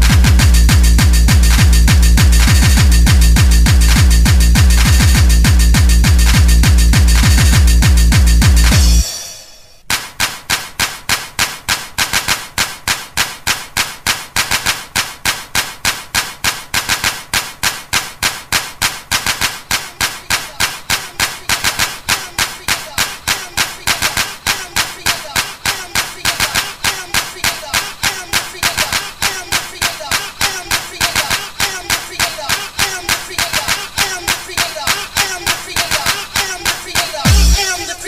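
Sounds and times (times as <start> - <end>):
fast sharp percussive hits: 0.0 - 37.8.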